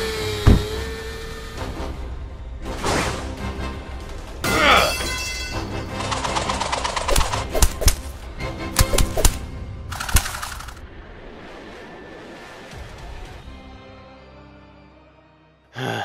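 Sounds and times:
dramatic background music: 0:00.0 - 0:15.7.

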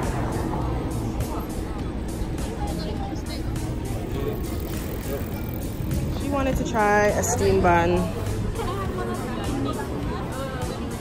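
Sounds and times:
city street traffic: 0:00.0 - 0:11.0
quiet background music with beat: 0:00.0 - 0:11.0.

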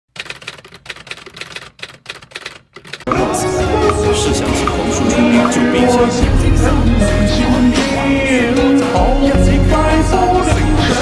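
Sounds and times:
typewriter key clicks: 0:00.2 - 0:03.1.

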